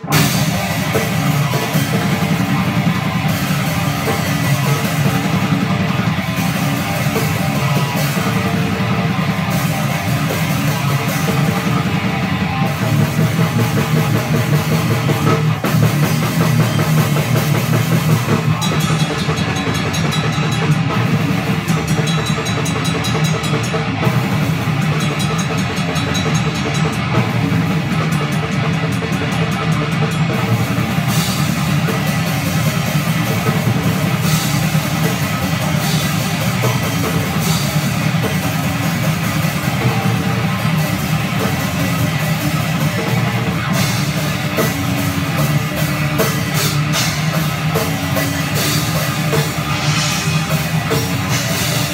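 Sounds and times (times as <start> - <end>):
distorted electric guitar: 0.0 - 51.9
drum kit played fast: 0.0 - 51.9.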